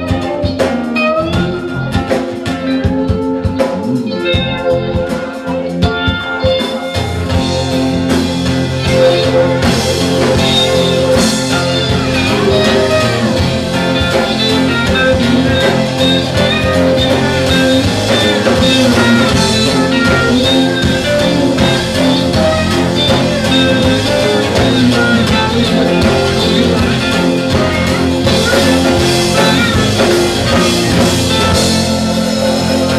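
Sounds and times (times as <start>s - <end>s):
drum kit: 0.0s - 32.9s
electric bass: 0.0s - 32.9s
slide guitar: 0.0s - 32.9s.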